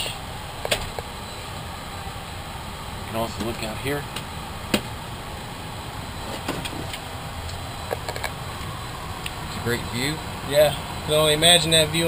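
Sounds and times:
fans and equipment humming: 0:00.0 - 0:12.0.

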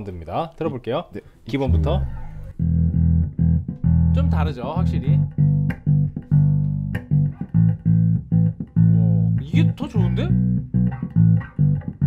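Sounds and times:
electric bass plucked notes: 0:01.6 - 0:12.0.

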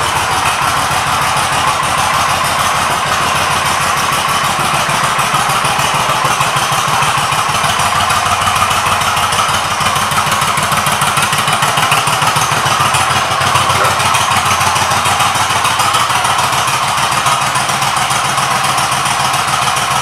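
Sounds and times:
motorcycle engine idling: 0:00.0 - 0:20.0.

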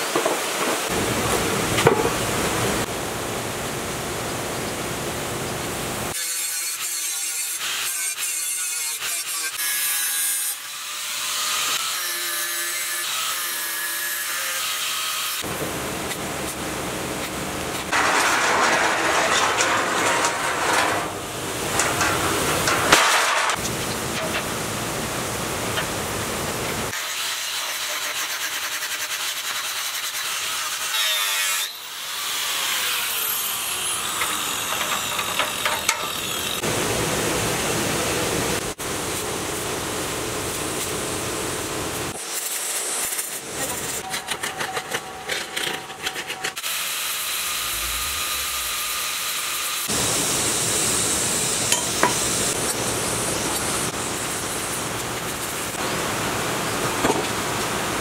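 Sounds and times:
angle grinder cutting steel: 0:06.1 - 0:15.5, 0:26.9 - 0:36.7, 0:42.2 - 0:50.0.

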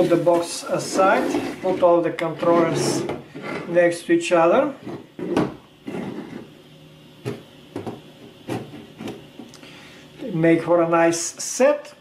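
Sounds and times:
plastic housings sliding on table: 0:00.8 - 0:03.7, 0:04.8 - 0:06.5.

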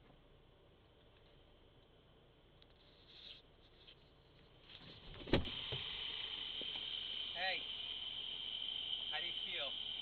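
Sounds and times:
car door shutting: 0:05.1 - 0:05.8
night insects chirring: 0:05.2 - 0:10.0.

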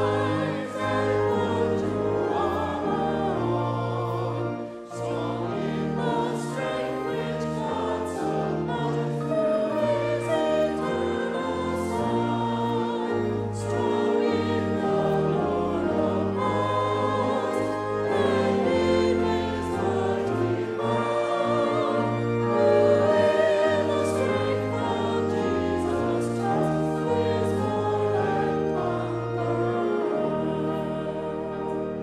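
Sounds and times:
group singing a hymn: 0:00.0 - 0:32.0
instrumental accompaniment: 0:00.0 - 0:32.0.

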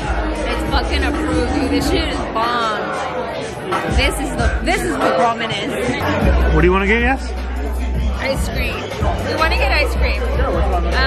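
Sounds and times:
background music with deep bass: 0:00.0 - 0:11.0
voices chattering: 0:00.0 - 0:11.0.

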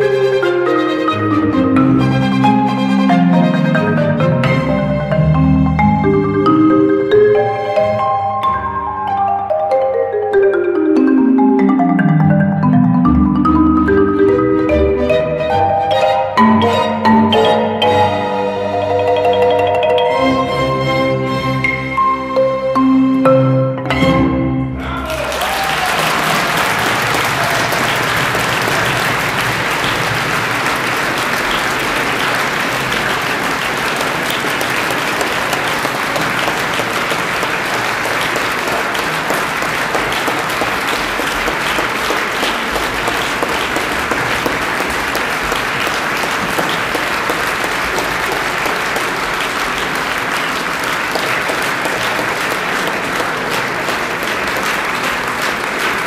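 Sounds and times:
audience applause: 0:24.8 - 0:56.0.

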